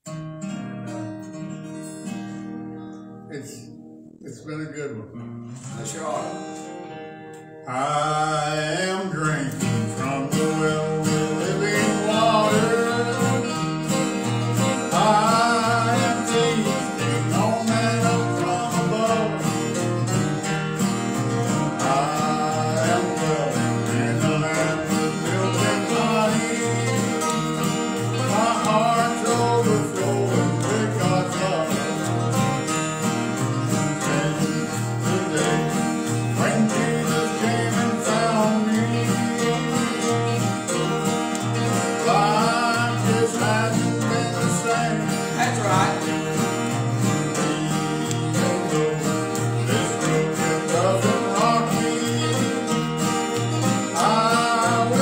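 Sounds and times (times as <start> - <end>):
acoustic guitars strumming: 0.0 - 55.0
man singing into a microphone: 7.6 - 20.2, 21.4 - 32.8, 33.4 - 53.0, 53.7 - 55.0.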